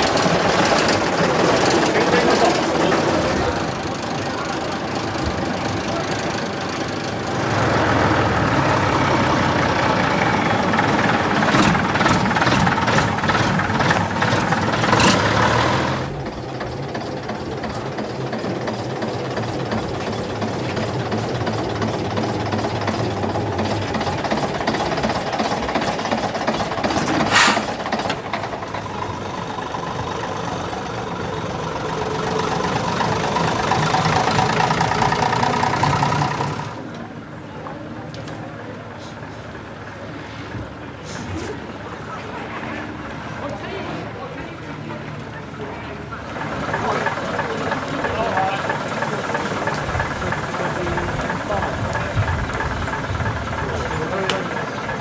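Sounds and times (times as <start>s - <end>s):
bus engine idling: 0.0s - 55.0s
coach passing: 0.0s - 55.0s
diesel engine running: 0.0s - 55.0s.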